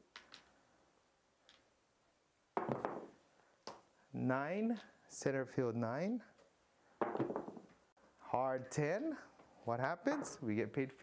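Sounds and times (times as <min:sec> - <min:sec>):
dice clattering on table: 0:02.6 - 0:03.2.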